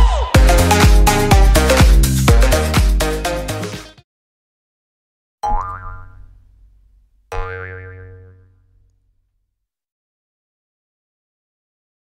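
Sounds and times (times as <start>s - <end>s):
springy boing sound effect: 5.4s - 6.5s, 7.3s - 8.6s.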